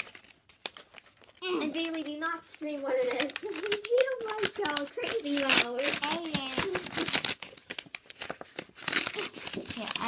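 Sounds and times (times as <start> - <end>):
tissue paper crinkling and tearing: 0.0 - 10.0.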